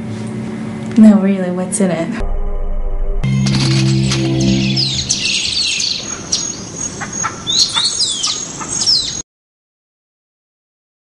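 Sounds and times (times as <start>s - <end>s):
low held tone: 2.2s - 6.2s
birds chirping: 3.3s - 9.2s.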